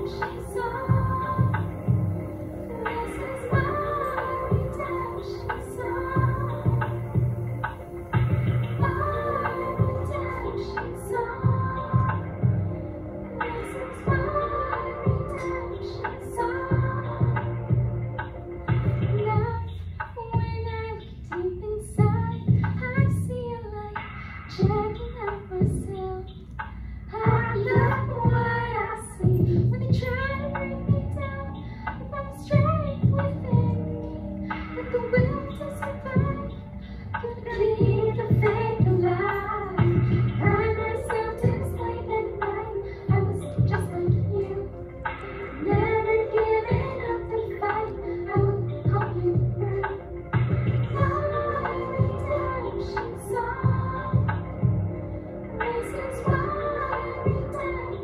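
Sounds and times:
bass and drum accompaniment: 0:00.0 - 0:04.9, 0:05.5 - 0:23.4, 0:24.0 - 0:26.0, 0:26.6 - 0:55.0
woman singing into microphone: 0:00.0 - 0:18.0, 0:18.8 - 0:58.0.

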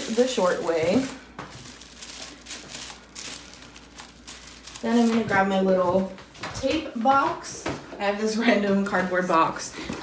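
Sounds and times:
tissue paper rustling: 0:00.0 - 0:05.6.

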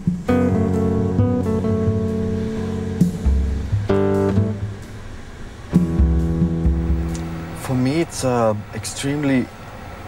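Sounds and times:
guitar bass notes and chords: 0:00.0 - 0:08.0.

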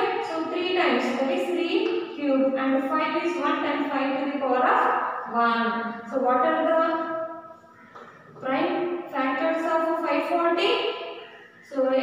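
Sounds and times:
woman talking: 0:00.0 - 0:07.2, 0:08.4 - 0:11.0, 0:11.7 - 0:12.0.

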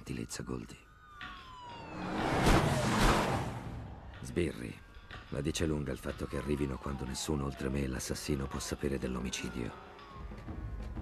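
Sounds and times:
police sirens wailing: 0:00.9 - 0:05.1, 0:06.3 - 0:11.0
cars rushing past: 0:01.6 - 0:04.3.

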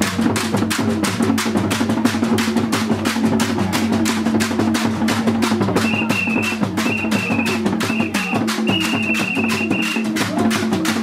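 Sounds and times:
stick drumming: 0:00.0 - 0:11.0.

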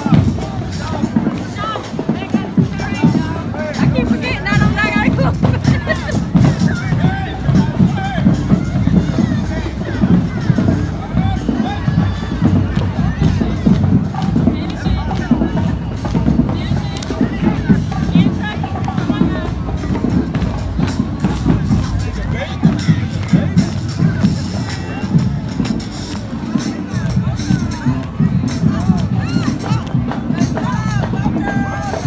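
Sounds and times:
crowd chatter: 0:00.0 - 0:32.0
parade music with drums: 0:00.0 - 0:32.0.

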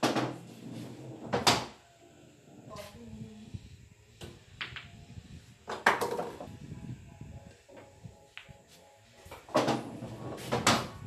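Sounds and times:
ball thudding inside wooden table: 0:05.7 - 0:06.5, 0:09.5 - 0:11.0.

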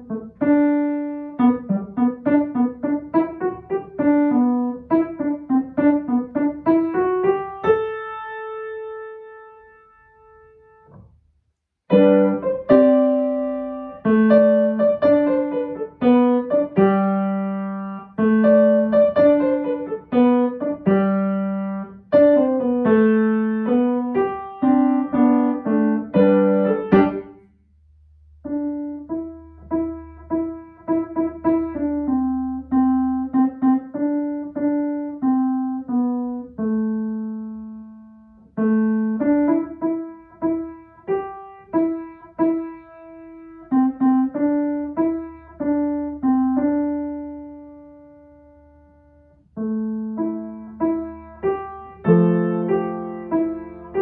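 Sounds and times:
piano playing: 0:00.0 - 0:11.1, 0:11.8 - 0:54.0.

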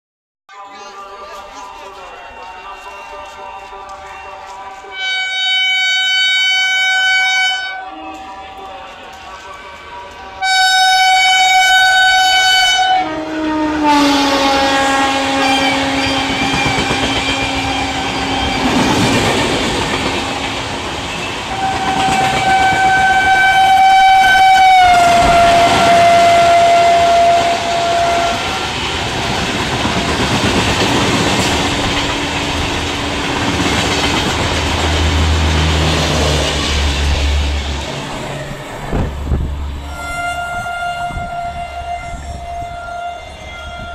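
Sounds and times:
train horn: 0:02.6 - 0:33.8, 0:39.7 - 0:43.9.

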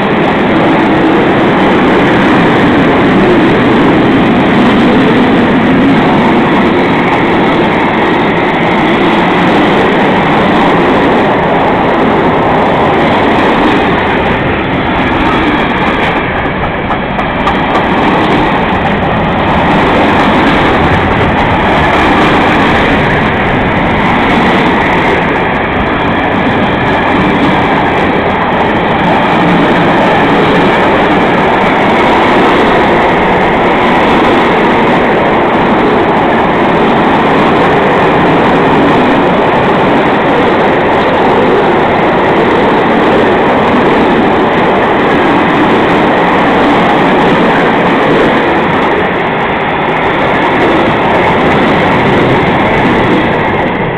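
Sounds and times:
freight wagons rumbling on rails: 0:00.0 - 0:53.9.

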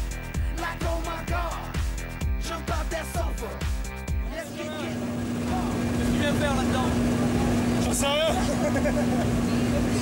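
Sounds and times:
background music: 0:00.0 - 0:07.8
plane engine drone in cabin: 0:04.5 - 0:10.0.

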